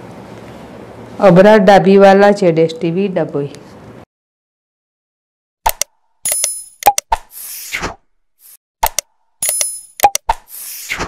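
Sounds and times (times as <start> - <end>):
sharp clicks: 5.7 - 7.3, 8.8 - 10.6
swish: 7.2 - 8.6, 10.3 - 11.0.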